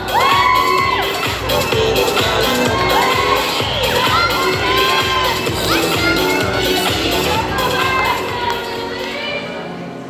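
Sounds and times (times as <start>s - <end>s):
audience cheering and shouting: 0.0s - 9.1s.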